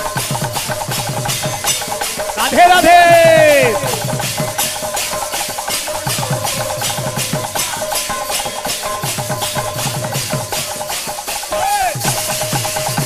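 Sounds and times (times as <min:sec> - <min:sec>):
even percussion beat: 0:00.0 - 0:13.0.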